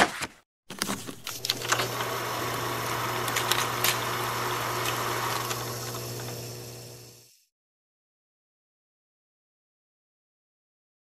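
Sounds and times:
film projector whirring: 0.7s - 7.5s.

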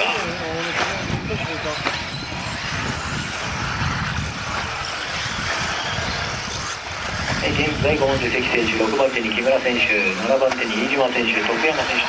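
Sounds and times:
distant rc motor whine: 0.0s - 12.0s
track noise: 0.0s - 12.0s.

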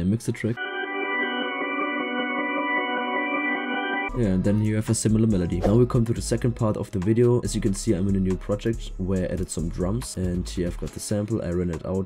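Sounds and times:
reversed synth bell chord: 0.6s - 4.2s.

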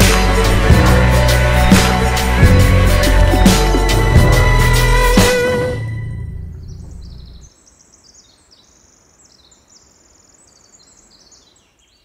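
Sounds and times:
music track: 0.0s - 7.4s
songbird trilling and chirping: 6.6s - 12.0s.

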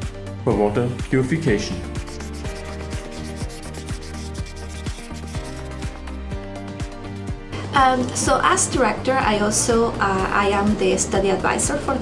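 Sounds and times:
background music with steady beat: 0.0s - 11.9s
marker pen scratching on whiteboard: 2.0s - 6.0s.

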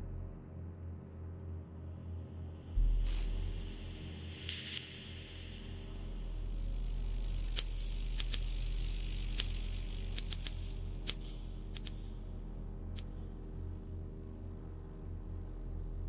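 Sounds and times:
electric hum: 2.7s - 16.0s
high hiss: 2.8s - 12.4s
sharp crackling clicks: 4.4s - 12.3s, 12.9s - 13.2s.

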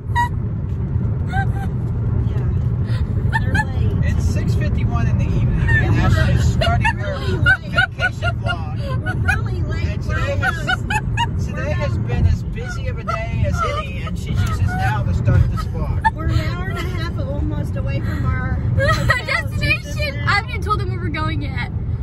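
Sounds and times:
car engine and road rumble: 0.0s - 22.0s
woman laughing: 1.3s - 1.8s, 2.9s - 3.9s, 5.6s - 17.2s, 18.0s - 19.9s.

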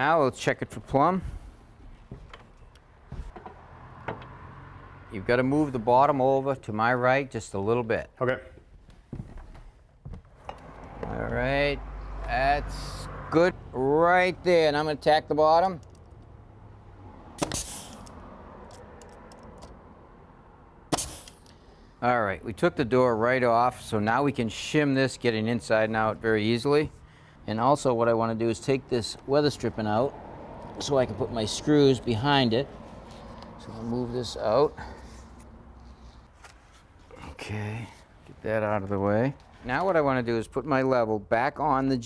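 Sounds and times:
nail gun firing: 17.4s - 18.0s, 20.9s - 21.4s.

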